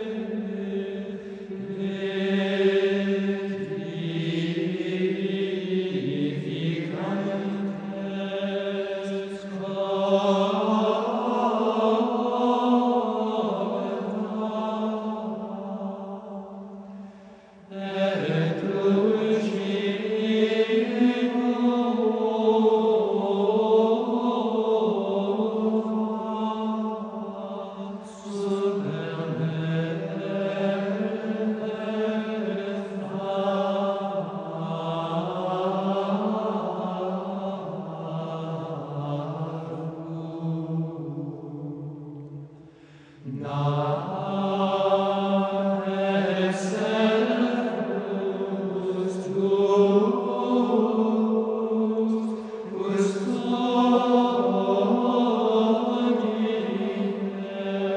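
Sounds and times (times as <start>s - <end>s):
voices chanting in unison: 0.0s - 57.9s.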